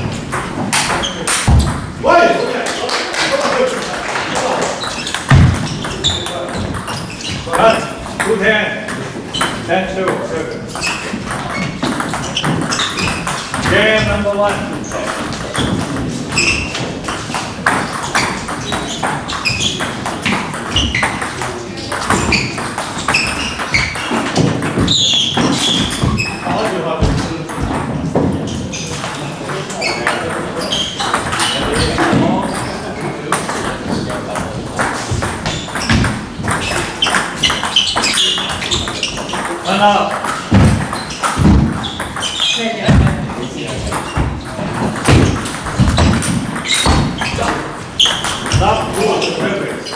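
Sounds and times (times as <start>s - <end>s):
people talking: 0.9s - 5.0s, 5.7s - 9.0s, 9.7s - 10.7s, 13.6s - 16.9s, 26.4s - 28.0s, 28.6s - 35.9s, 39.4s - 40.3s, 42.5s - 45.4s, 47.2s - 47.7s, 48.4s - 49.9s.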